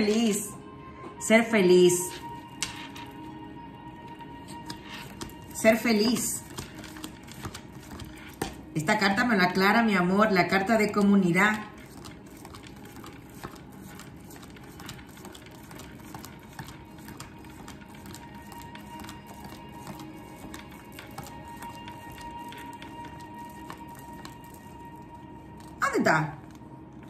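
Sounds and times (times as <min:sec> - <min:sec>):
soft music of held tones: 0:00.0 - 0:27.0
cards being shuffled: 0:02.1 - 0:03.3, 0:04.4 - 0:08.8, 0:10.8 - 0:25.8.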